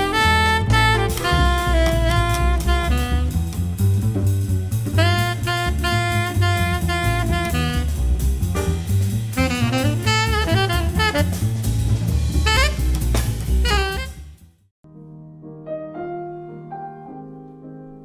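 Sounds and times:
jazz saxophone: 0:00.0 - 0:14.5
drum kit: 0:00.0 - 0:14.6.

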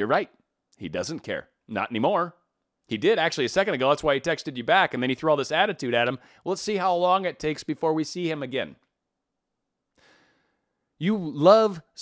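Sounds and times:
faint breath into microphone: 0:06.2 - 0:06.4, 0:10.0 - 0:10.8.

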